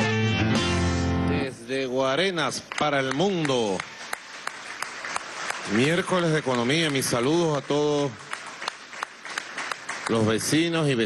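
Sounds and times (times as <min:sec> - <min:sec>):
light applause: 0:02.5 - 0:11.0.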